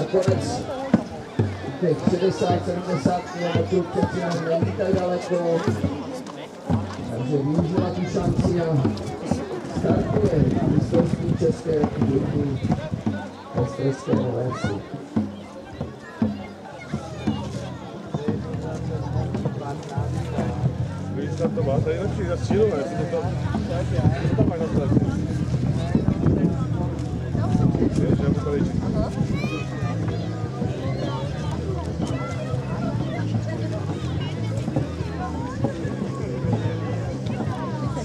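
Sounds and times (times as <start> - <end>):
people talking and calling: 0.0 - 38.0.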